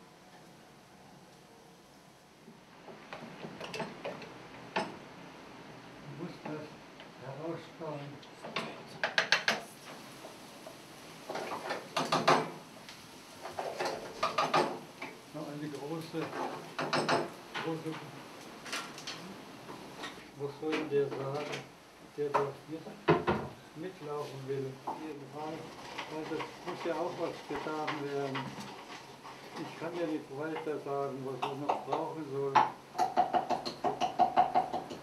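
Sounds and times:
utensil knocking on frying pan: 0:31.4 - 0:35.0.

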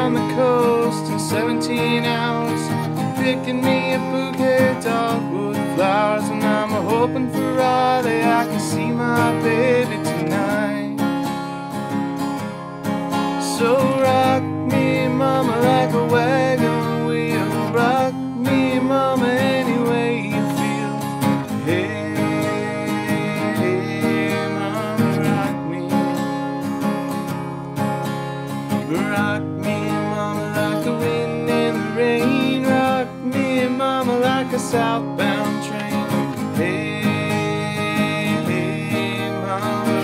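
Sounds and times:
man singing: 0:00.0 - 0:11.2, 0:13.2 - 0:26.8, 0:28.7 - 0:40.0
acoustic guitar strumming: 0:00.0 - 0:40.0.

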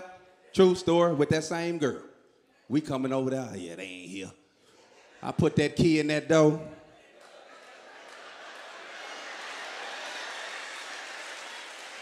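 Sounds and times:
audience laughing: 0:06.8 - 0:10.8
audience applauding: 0:07.2 - 0:12.0.

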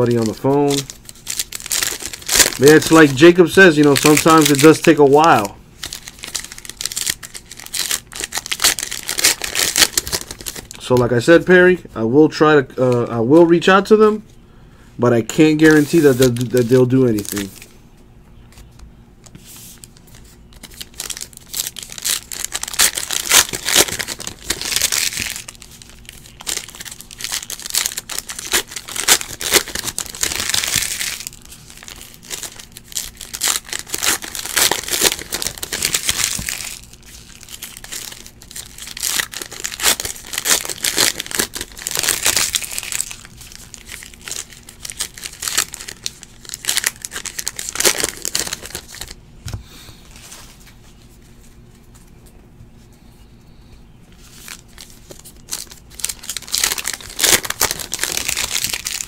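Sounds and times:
cards rustling and clicking: 0:00.0 - 0:11.0, 0:15.6 - 0:17.7, 0:18.5 - 0:49.6.

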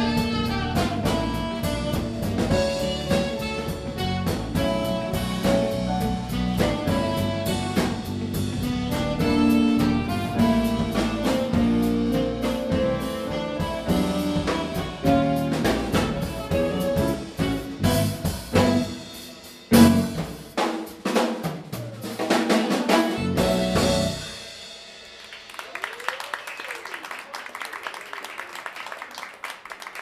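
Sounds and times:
live jazz band playing: 0:00.0 - 0:25.1
busy drumming: 0:00.0 - 0:26.3
audience applause: 0:25.2 - 0:30.0.

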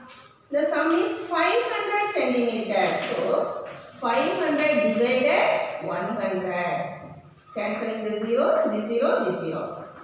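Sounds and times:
woman speaking: 0:00.5 - 0:10.0.

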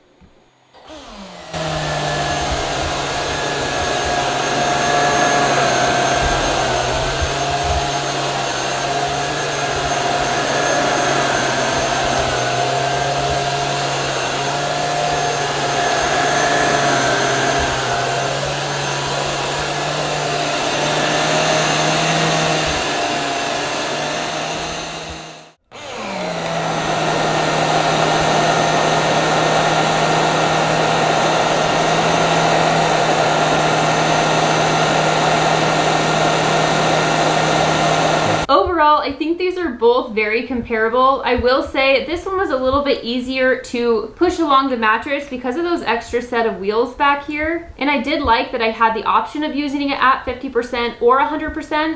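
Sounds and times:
vacuum cleaner running: 0:00.0 - 0:39.0.

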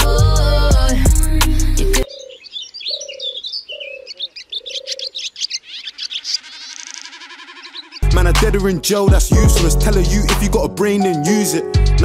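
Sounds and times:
pop song: 0:00.0 - 0:02.1, 0:08.0 - 0:12.0
dove cooing: 0:02.0 - 0:08.0
high bird chirps: 0:02.0 - 0:08.1.

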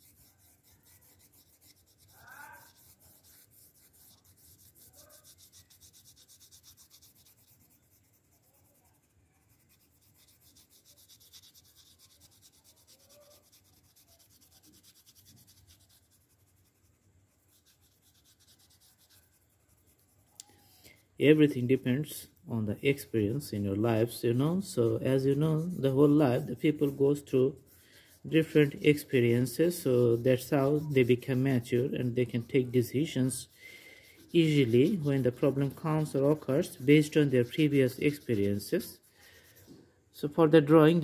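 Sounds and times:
crayon rubbing on paper: 0:00.0 - 0:39.8.

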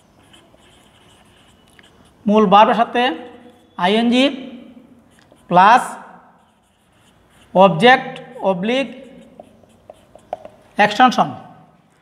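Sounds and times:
marker pen scratching on whiteboard: 0:00.0 - 0:04.2, 0:05.0 - 0:11.0.

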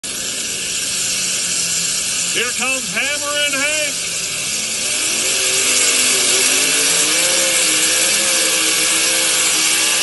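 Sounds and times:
supercharged engine idling: 0:00.0 - 0:10.0.

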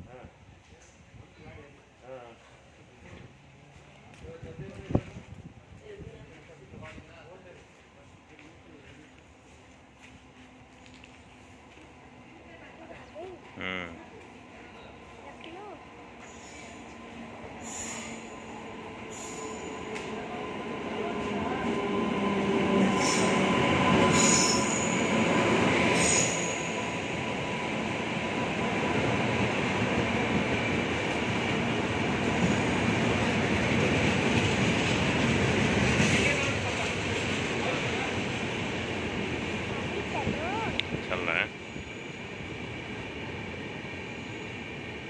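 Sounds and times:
train wheels rumbling on rails: 0:02.4 - 0:45.0
squealing train brakes: 0:16.2 - 0:20.2, 0:22.8 - 0:27.0.

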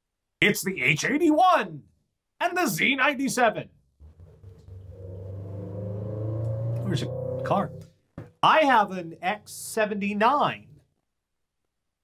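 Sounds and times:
car engine hum: 0:04.0 - 0:07.9.

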